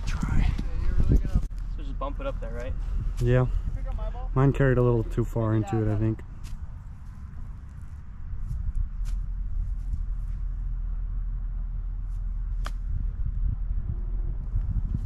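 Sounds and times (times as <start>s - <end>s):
wind rumble on microphone: 0.0s - 15.0s.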